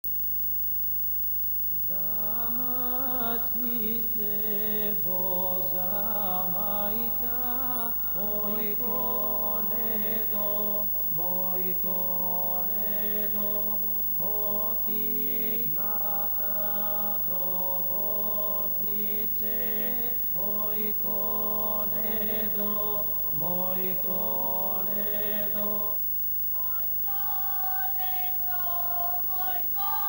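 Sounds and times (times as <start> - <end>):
voices singing a chant: 1.9 - 30.0.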